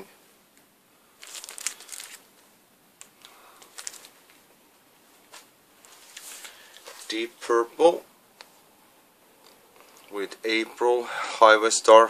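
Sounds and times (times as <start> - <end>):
plastic sleeve crinkling: 1.2 - 4.5.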